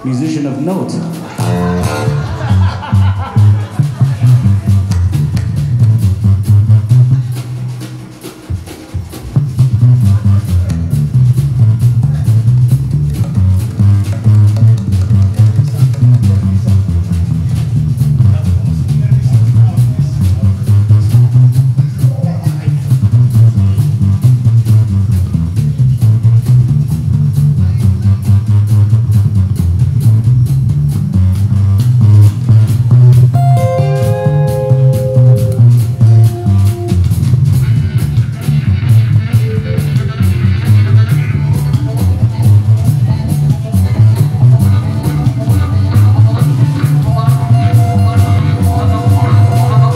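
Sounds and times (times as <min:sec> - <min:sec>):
upright bass: 0:00.0 - 0:49.9
harmonica notes: 0:33.4 - 0:41.6, 0:44.3 - 0:49.9.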